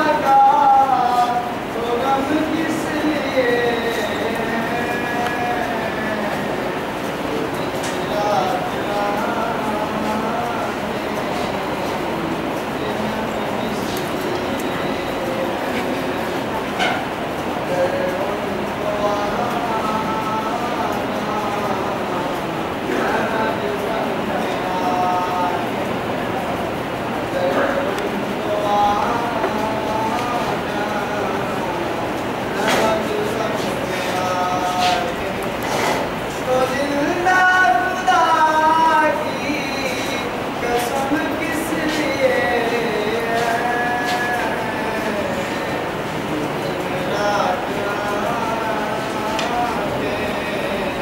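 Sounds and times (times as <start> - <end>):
boy singing unaccompanied: 0.0 - 16.5, 17.6 - 26.0, 27.2 - 51.0
crowded hall background noise: 0.0 - 51.0.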